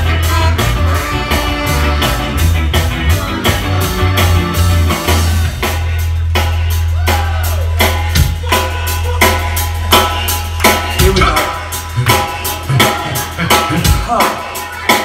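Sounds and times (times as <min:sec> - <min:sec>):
drum kit beat: 0:00.0 - 0:15.0
ska band playing: 0:00.0 - 0:15.0.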